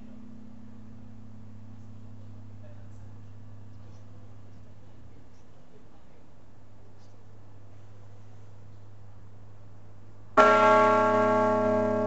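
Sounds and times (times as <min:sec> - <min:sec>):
faint low hum: 0:00.0 - 0:12.0
church bell ringing: 0:10.4 - 0:12.0.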